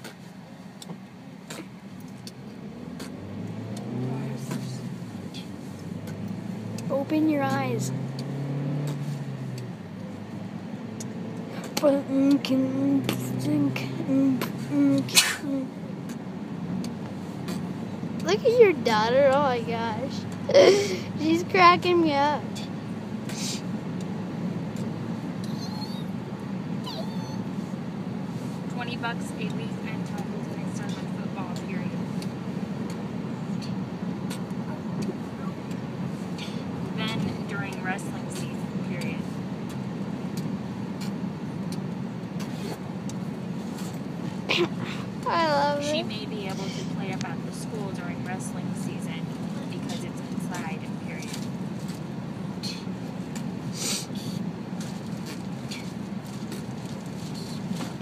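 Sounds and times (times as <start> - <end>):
car cabin road rumble: 0.0 - 58.0.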